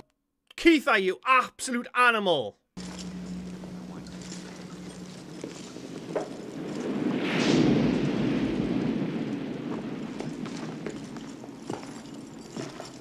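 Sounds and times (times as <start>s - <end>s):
rushing noise: 2.8s - 13.0s.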